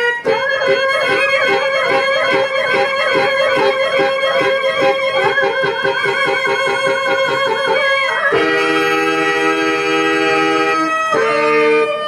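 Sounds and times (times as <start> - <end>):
instrumental accompaniment: 0.0 - 12.0
person singing long held notes: 0.0 - 12.0.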